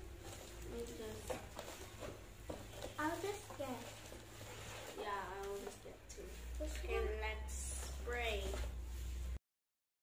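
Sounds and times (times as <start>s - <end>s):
person speaking: 0.3s - 9.2s.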